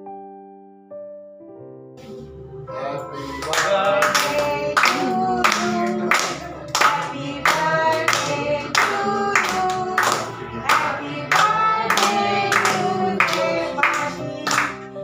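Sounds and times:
music: 0.0s - 15.0s
people singing: 2.0s - 15.0s
hands clapping in time: 3.4s - 15.0s.

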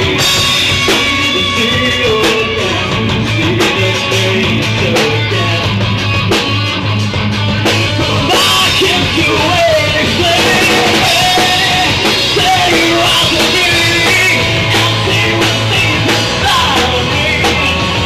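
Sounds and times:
person singing: 0.0s - 5.8s, 7.6s - 18.0s
bass guitar: 0.0s - 18.0s
drum kit: 0.0s - 18.0s
electric guitars: 0.0s - 18.0s.

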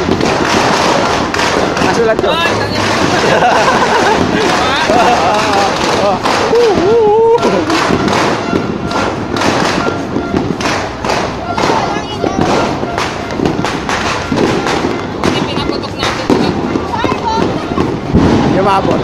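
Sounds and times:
firecrackers and fireworks banging: 0.0s - 19.0s
voices calling out: 0.0s - 19.0s.

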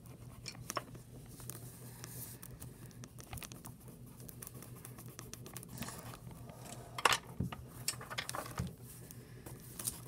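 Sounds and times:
paper sheets handled: 7.3s - 10.0s.

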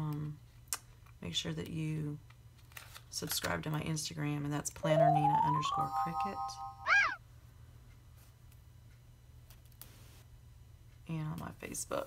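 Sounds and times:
electronic chirp sweeping in pitch: 4.9s - 7.2s.

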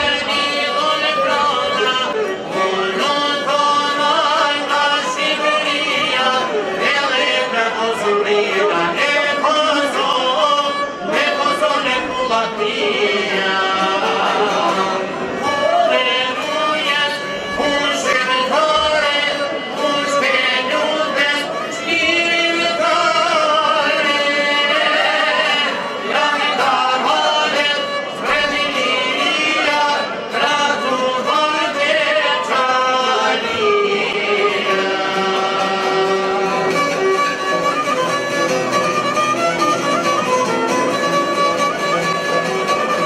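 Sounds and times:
man singing: 0.0s - 37.6s
bowed violin: 0.0s - 43.0s
strummed lutes: 0.0s - 43.0s.

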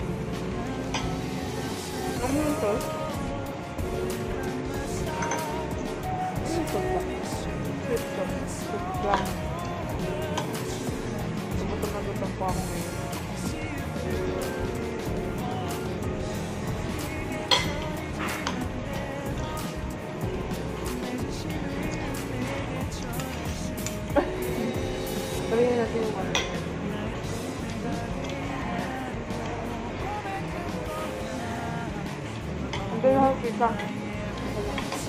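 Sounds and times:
background music: 0.0s - 35.0s
low voices: 0.0s - 35.0s
cutlery clinking on plates: 5.2s - 5.6s.

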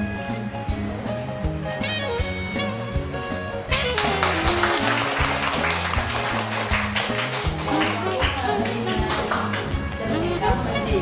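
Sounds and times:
music with bass and beat: 0.0s - 5.4s, 6.8s - 11.0s
people clapping along: 3.7s - 10.2s.

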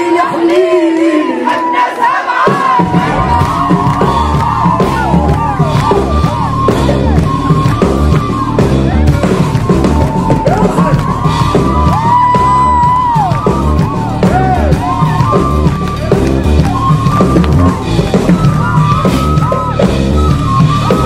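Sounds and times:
drum kit steady beat: 2.5s - 21.0s
sliding lead melody: 2.8s - 21.0s.

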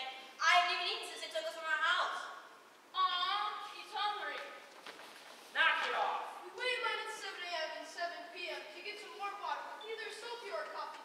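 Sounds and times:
young actors speaking on stage: 0.0s - 4.8s, 5.4s - 11.0s.

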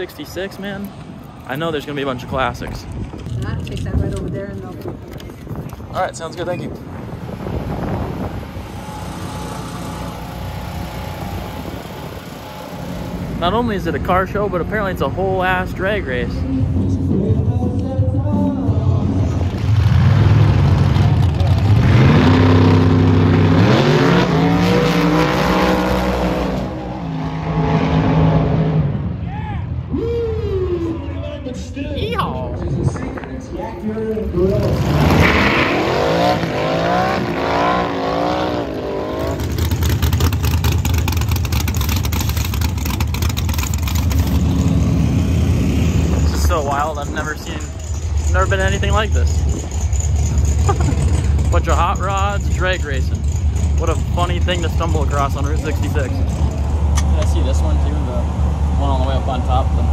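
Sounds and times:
racing car engines revving: 19.0s - 31.1s, 33.0s - 59.9s
low engine rumble: 38.6s - 59.9s.

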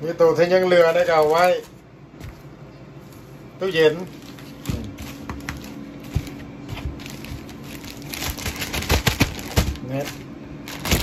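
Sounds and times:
plastic crinkling: 0.6s - 1.8s, 3.8s - 11.0s.

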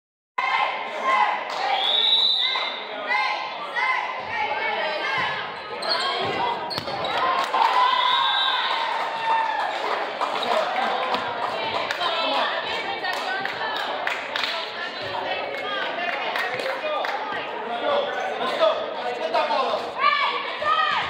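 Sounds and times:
players' voices echoing in gym: 0.4s - 21.0s.

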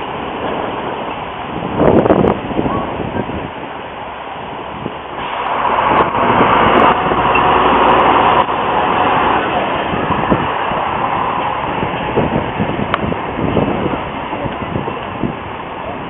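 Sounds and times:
diesel railcar passing: 0.0s - 16.0s.

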